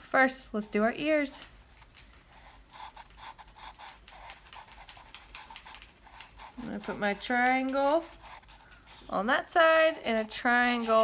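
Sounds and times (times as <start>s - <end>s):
marker scratching on cardboard: 2.3s - 11.0s.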